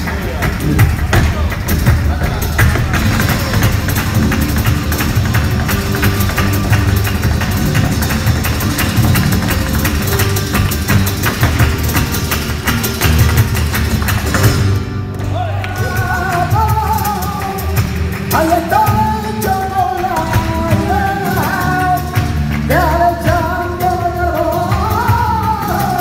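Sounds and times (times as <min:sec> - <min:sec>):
flamenco guitar: 0:00.0 - 0:26.0
footwork on wooden stage: 0:00.0 - 0:26.0
hand-clapping: 0:00.0 - 0:26.0
man singing: 0:15.3 - 0:26.0.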